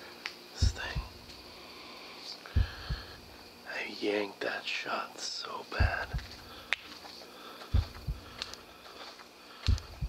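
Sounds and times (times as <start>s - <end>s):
slow heavy footsteps: 0.6s - 1.4s, 2.5s - 3.5s, 5.8s - 10.0s.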